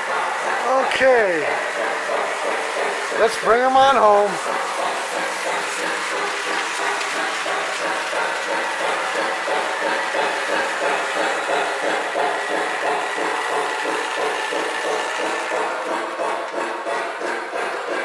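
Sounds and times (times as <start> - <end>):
toy train motor hum: 0.0 - 18.0
toy train wheels clattering: 0.0 - 18.0.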